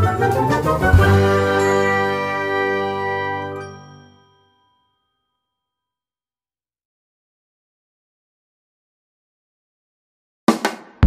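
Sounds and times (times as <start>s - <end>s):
ringing chime-like jingle: 1.3s - 5.8s.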